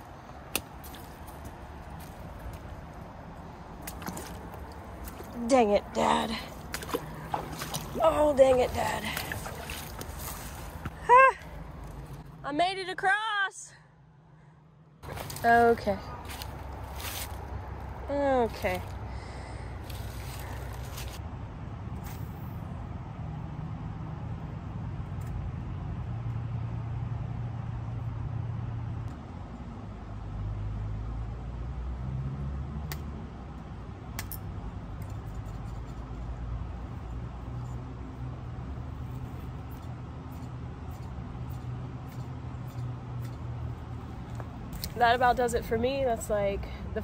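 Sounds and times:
low outdoor rumble: 0.0s - 32.0s.

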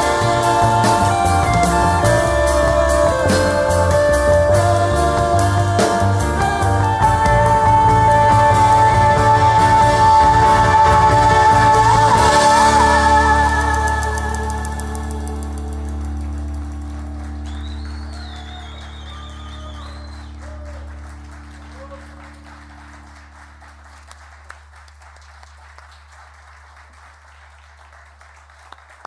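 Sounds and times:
live band chord ringing: 0.0s - 17.6s
audience clapping and cheering: 10.3s - 29.0s.

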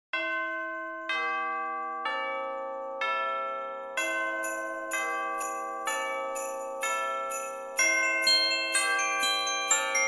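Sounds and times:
bell notes falling in pitch: 4.0s - 10.0s.

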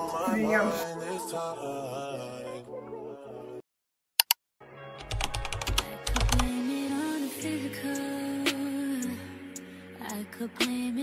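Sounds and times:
sharp clicks: 4.2s - 4.4s.

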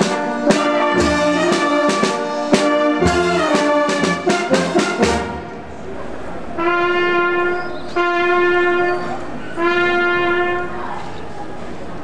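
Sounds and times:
brass instrument long note: 0.0s - 5.7s, 6.6s - 10.9s.

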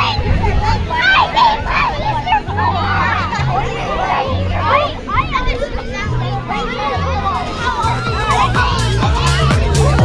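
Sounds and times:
children chattering and calling out: 0.0s - 10.0s
music with held bass notes: 7.1s - 10.0s.

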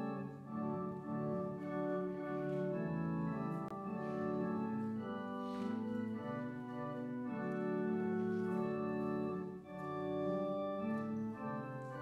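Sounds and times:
church organ playing a hymn: 0.0s - 12.0s.

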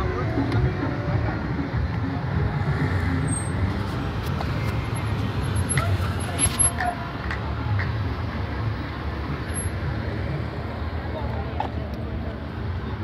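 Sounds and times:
road traffic rumble: 0.0s - 13.0s
faint voices: 10.2s - 13.0s.

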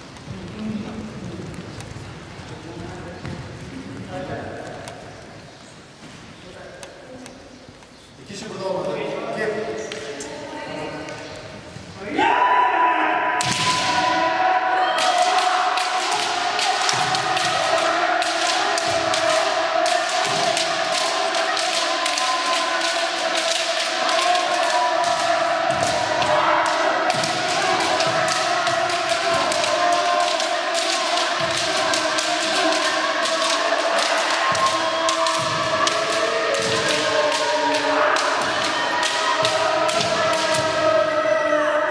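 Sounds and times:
many voices shouting: 12.0s - 41.9s.

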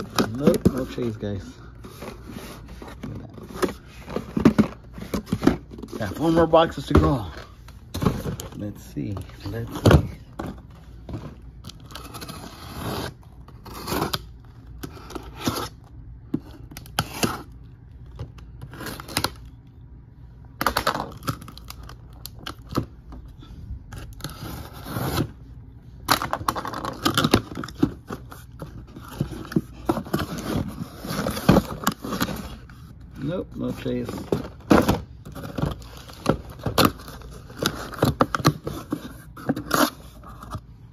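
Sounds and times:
packing tape scraping and tearing: 0.0s - 7.3s, 11.3s - 17.6s, 18.2s - 19.6s, 23.9s - 25.4s, 26.0s - 40.6s.

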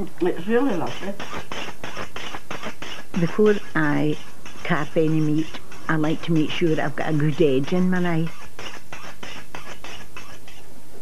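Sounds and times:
knife blade scraping on sharpener: 0.9s - 10.7s.

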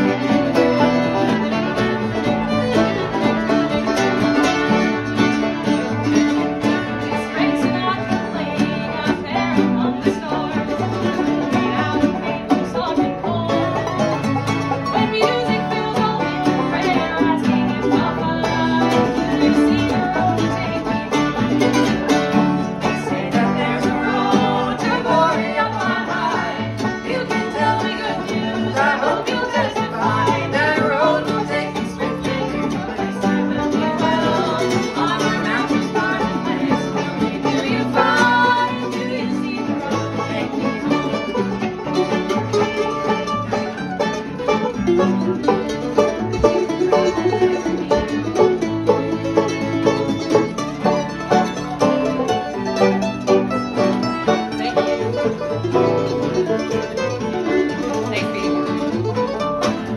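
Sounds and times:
acoustic string band playing: 0.0s - 59.9s
woman singing lead vocal: 7.0s - 14.0s, 14.9s - 21.1s, 22.9s - 40.9s
men singing harmony: 22.9s - 40.7s.

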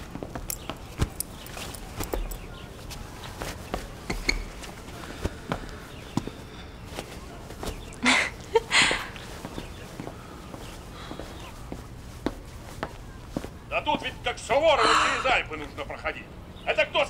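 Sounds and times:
clothing rustling: 0.0s - 14.3s
light footsteps: 0.0s - 15.8s.

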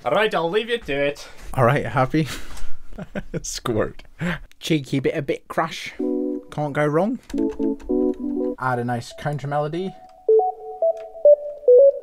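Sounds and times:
synthesizer melody of short notes: 6.0s - 12.0s.

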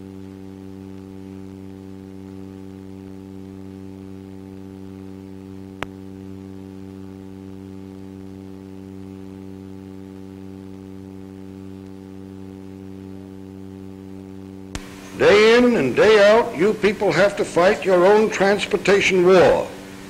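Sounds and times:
steady electrical hum: 0.0s - 20.0s.

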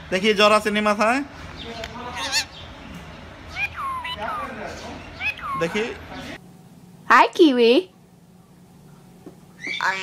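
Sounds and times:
parakeet calls: 1.6s - 6.4s, 9.6s - 10.0s.

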